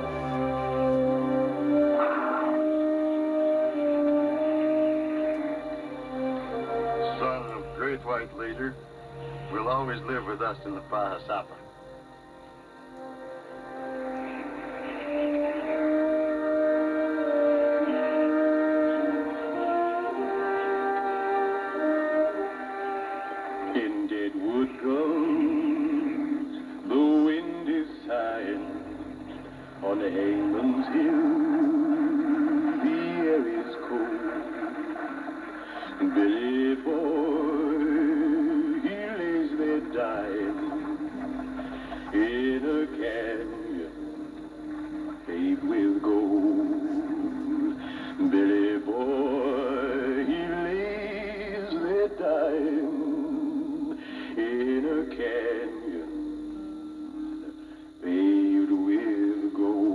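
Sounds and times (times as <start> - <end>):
held instrumental chord: 0.0 - 53.8
voices singing: 0.0 - 59.9.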